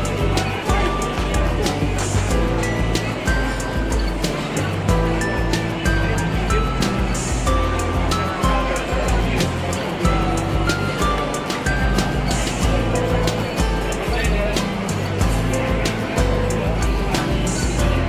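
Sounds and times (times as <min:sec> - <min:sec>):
music with beat and heavy bass: 0:00.0 - 0:18.0.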